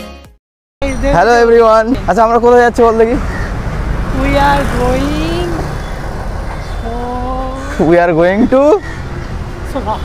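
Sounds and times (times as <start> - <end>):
man's voice: 0.8 - 3.2
road traffic noise: 0.8 - 10.0.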